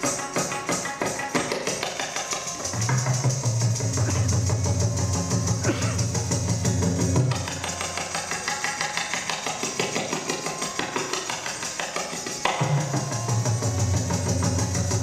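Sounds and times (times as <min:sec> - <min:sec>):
ankle bells jingling: 0:00.0 - 0:15.0
tabla playing: 0:00.0 - 0:15.0.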